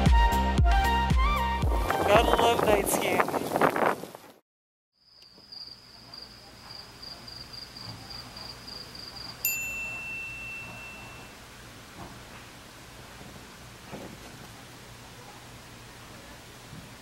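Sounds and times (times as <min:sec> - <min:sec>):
bright ding: 0:09.4 - 0:11.4
high steady tone: 0:09.4 - 0:11.5.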